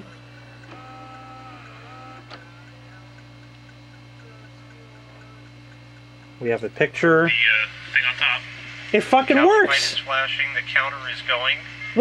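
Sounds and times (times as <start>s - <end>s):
electrical hum: 0.0s - 12.0s
tape mechanism whirring: 0.6s - 2.6s.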